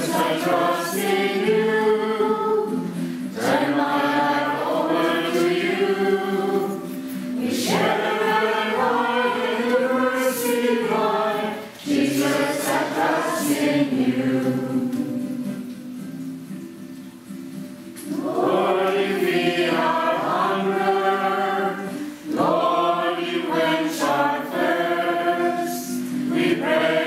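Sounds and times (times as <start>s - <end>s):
group singing a hymn: 0.0s - 15.9s, 18.0s - 27.0s.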